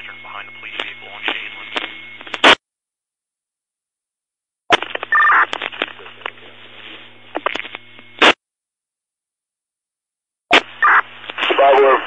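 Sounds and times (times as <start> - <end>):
radio hiss: 0.0 - 2.6, 10.5 - 12.0
radio squelch burst: 0.0 - 2.6, 10.5 - 12.0
two-pitch radio beep: 0.0 - 2.6, 10.8 - 12.0
radio clicks: 0.6 - 2.6.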